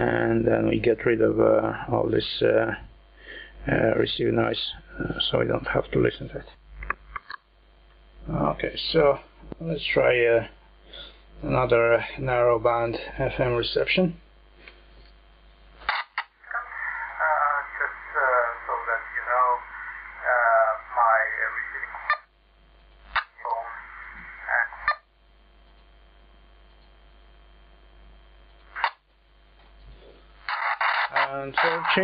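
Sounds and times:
faint steady hum: 0.0s - 32.0s
thin radio voice: 16.4s - 22.3s, 23.2s - 25.1s, 30.5s - 32.0s.

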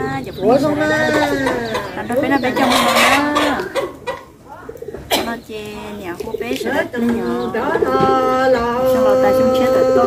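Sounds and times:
people talking: 0.0s - 10.0s
woman speaking: 1.3s - 3.8s, 4.5s - 8.0s.

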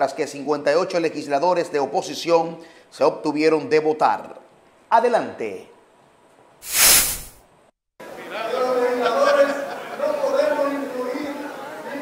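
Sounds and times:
whoosh sound effect: 6.6s - 7.4s.

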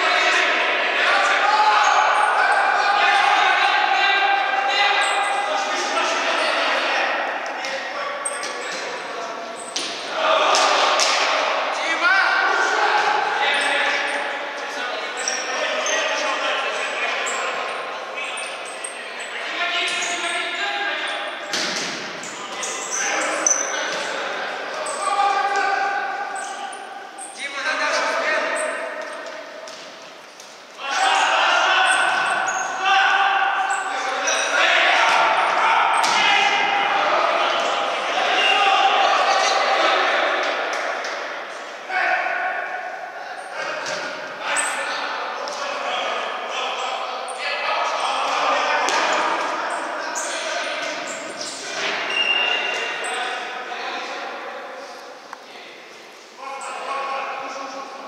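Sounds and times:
men calling and talking: 0.0s - 58.0s.

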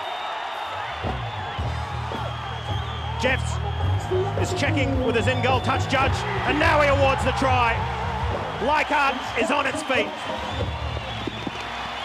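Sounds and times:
high whistle: 0.0s - 6.1s
crowd cheering and applauding: 0.0s - 12.0s.

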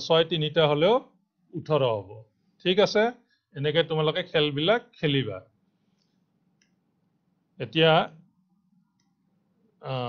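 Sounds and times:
faint small clicks: 6.0s - 6.8s, 9.0s - 9.2s.

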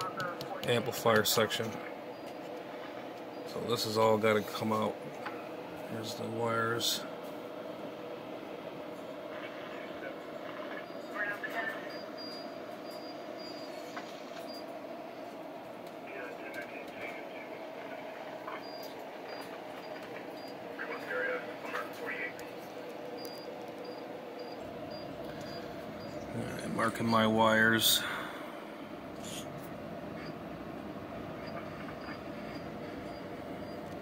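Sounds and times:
steady background hum: 0.0s - 34.0s.

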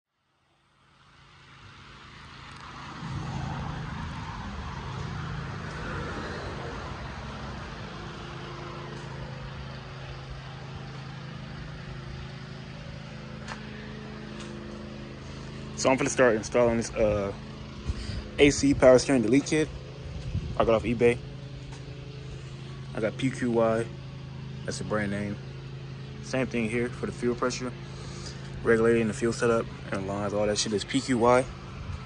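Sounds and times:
car engine idling: 0.9s - 32.0s.

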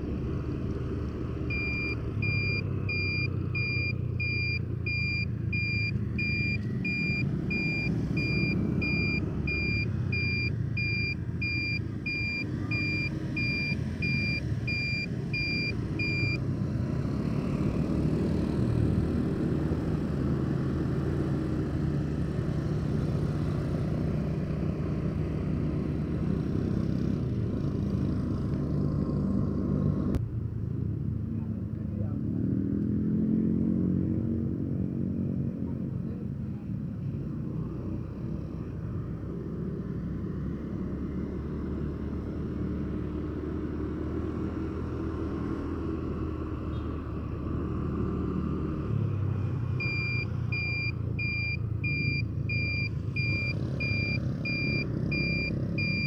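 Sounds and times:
road noise: 0.0s - 56.0s
high electronic beep: 1.5s - 16.4s, 49.8s - 56.0s.

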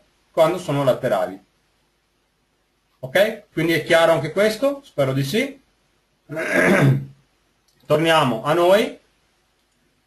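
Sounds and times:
person talking: 0.3s - 1.5s, 3.0s - 5.6s, 7.8s - 9.0s
person clearing throat: 6.3s - 7.2s.

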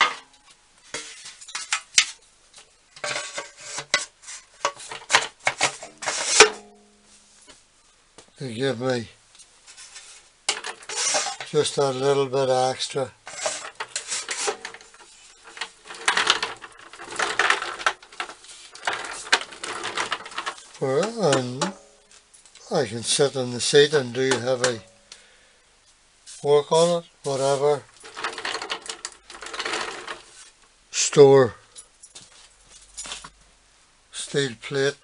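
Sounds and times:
metal tray sliding and clattering: 3.0s - 6.7s, 9.7s - 12.0s, 13.3s - 21.9s, 26.8s - 30.6s
castor wheels rolling on concrete: 10.5s - 11.8s, 13.3s - 21.8s, 27.4s - 30.5s.

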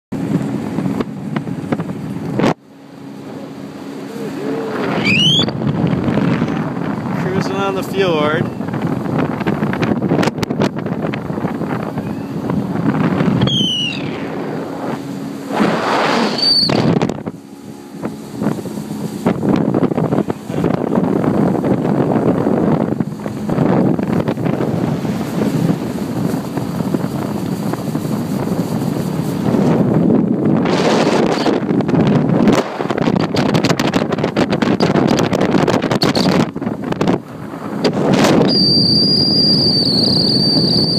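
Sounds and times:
boat motor rushing: 0.1s - 40.9s
wind buffeting microphone: 0.1s - 40.9s
water rushing: 0.2s - 9.8s
brief high-pitched squeals: 13.4s - 14.2s, 16.2s - 16.9s, 38.4s - 40.9s.

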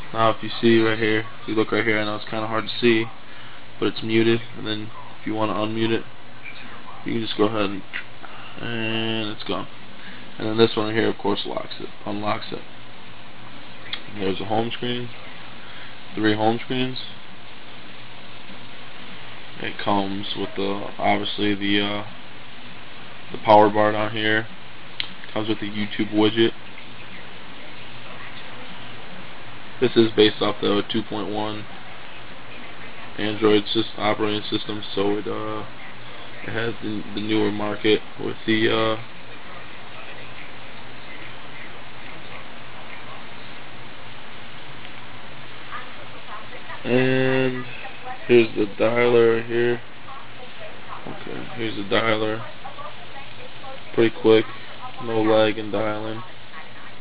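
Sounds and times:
faint low hum: 0.0s - 57.0s
steady background hiss: 0.0s - 57.0s.

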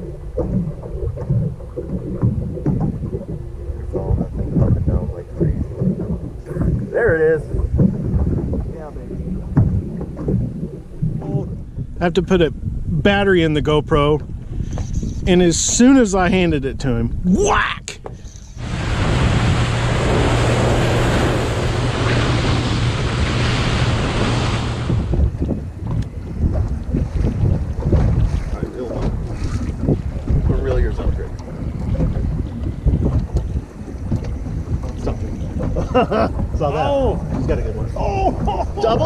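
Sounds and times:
rushing water: 0.0s - 12.4s, 17.3s - 39.0s
boat motor humming: 0.0s - 39.0s
wind buffeting microphone: 0.0s - 39.0s
wind hissing: 18.2s - 25.3s.

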